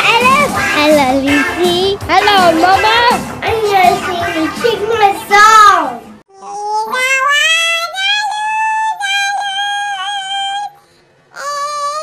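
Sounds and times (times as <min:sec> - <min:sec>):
young child singing: 0:00.0 - 0:10.8, 0:11.4 - 0:12.0.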